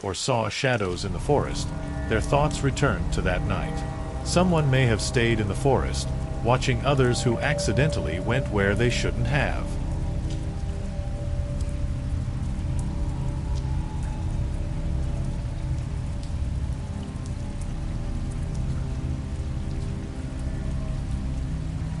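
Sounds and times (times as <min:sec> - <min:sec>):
steady rain: 0:00.0 - 0:22.0
dark ambient drone music: 0:00.8 - 0:22.0
faint drop ticks: 0:00.9 - 0:21.7.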